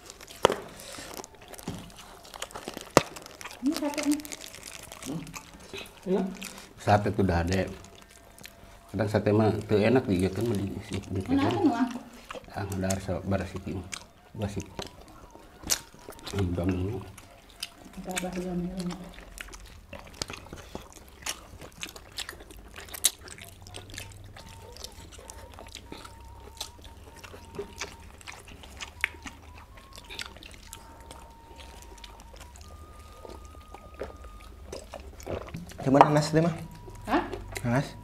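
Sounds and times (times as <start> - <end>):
lip smacks and chewing: 0.0 - 38.0.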